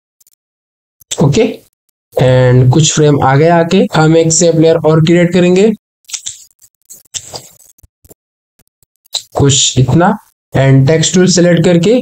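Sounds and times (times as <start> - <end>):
computer mouse clicking: 6.1 - 9.4.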